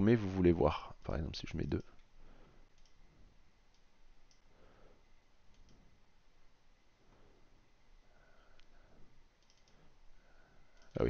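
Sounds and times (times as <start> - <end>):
faint computer mouse clicks: 2.7 - 3.0, 3.7 - 4.5, 5.5 - 5.9, 9.4 - 9.9.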